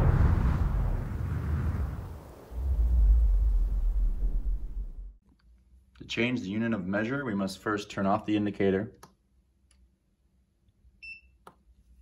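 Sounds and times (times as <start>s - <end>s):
deep rumbling boom: 0.0s - 5.2s.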